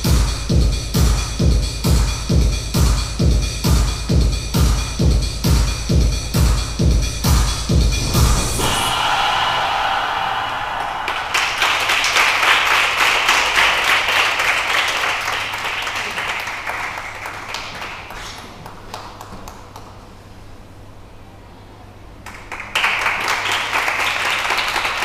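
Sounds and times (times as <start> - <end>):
electronic dance music: 0.0 - 9.6
audience applauding: 9.0 - 18.3, 22.3 - 25.0.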